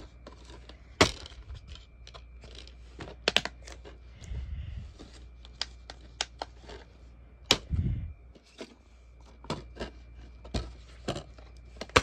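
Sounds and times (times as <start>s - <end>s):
soft handling noise: 0.0s - 12.0s
plastic cases clicking: 5.4s - 6.8s.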